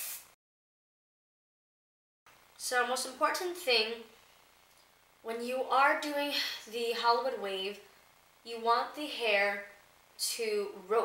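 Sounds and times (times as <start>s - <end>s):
aerosol spray hissing: 0.0s - 0.4s.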